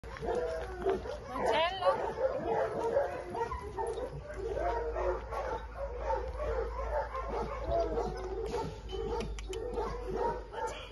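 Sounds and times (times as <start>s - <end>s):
dogs barking and yipping: 0.0s - 10.9s.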